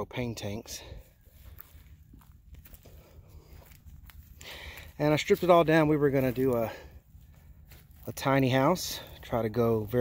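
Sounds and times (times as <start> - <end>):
footsteps in grass: 0.2 - 10.0.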